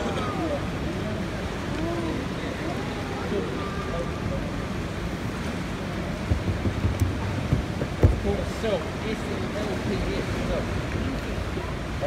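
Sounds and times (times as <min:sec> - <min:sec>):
motor boat rumble: 0:00.0 - 0:12.0
rushing water: 0:00.0 - 0:12.0
wind on microphone: 0:06.2 - 0:08.4
low thumps: 0:06.2 - 0:08.5.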